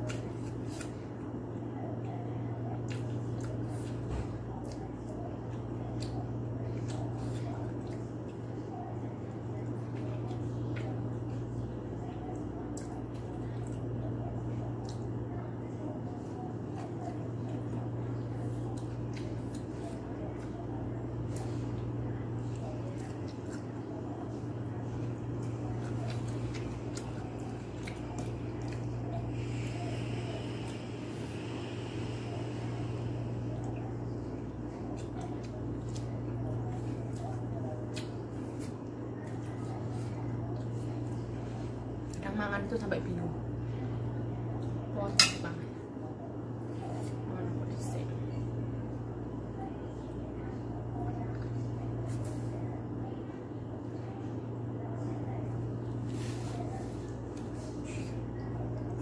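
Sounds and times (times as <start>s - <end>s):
fingers squishing wet vegetables: 0.0s - 1.2s
steady low hum: 0.0s - 59.0s.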